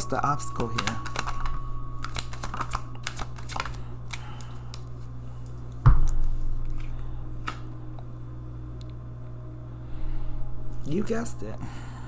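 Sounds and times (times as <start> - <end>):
cards clicking and tapping: 0.6 - 4.9.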